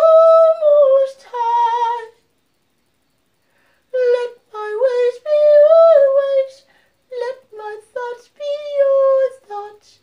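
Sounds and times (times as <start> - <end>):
solo voice singing: 0.0 - 2.2, 3.9 - 10.0.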